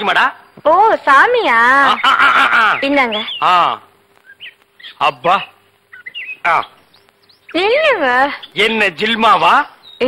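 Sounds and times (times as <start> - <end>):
faint birds chirping: 0.0 - 10.0.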